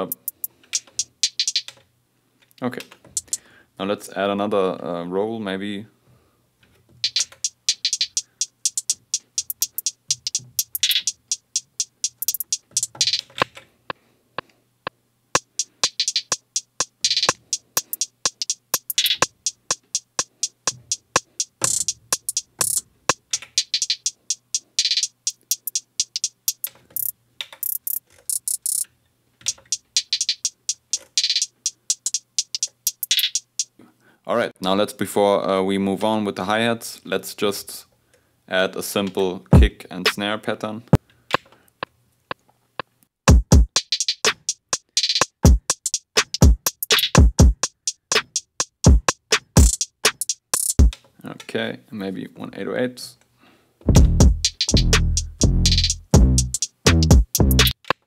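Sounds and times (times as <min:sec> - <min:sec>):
drum machine hi-hat rolls: 0:00.0 - 0:01.7, 0:03.1 - 0:03.4, 0:07.0 - 0:13.5, 0:15.3 - 0:28.8, 0:29.4 - 0:33.8, 0:43.3 - 0:51.0, 0:53.9 - 0:57.9.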